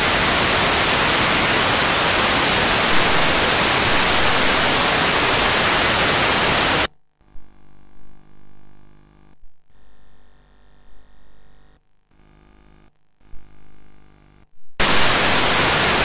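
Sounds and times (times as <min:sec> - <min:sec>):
loud static hiss: 0:00.0 - 0:06.9, 0:13.5 - 0:16.0.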